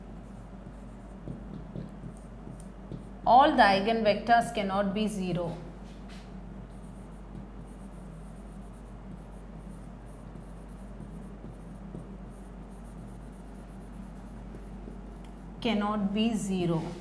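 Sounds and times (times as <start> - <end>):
marker pen writing on whiteboard: 0.0 - 3.4, 5.4 - 15.9
steady low hum: 0.0 - 17.0.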